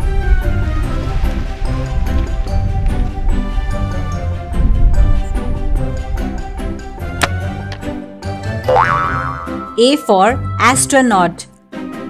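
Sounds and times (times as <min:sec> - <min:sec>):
background music: 0:00.0 - 0:12.0
springy boing sound effect: 0:08.6 - 0:09.8.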